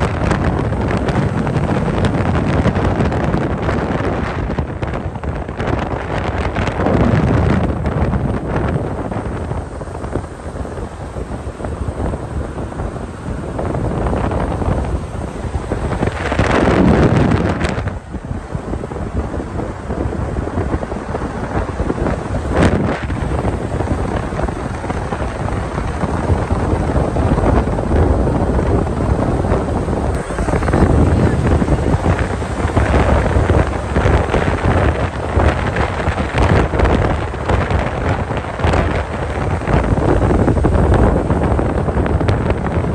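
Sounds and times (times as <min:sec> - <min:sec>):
road noise rushing: 0:00.0 - 0:42.9
wind buffeting microphone: 0:00.0 - 0:42.9.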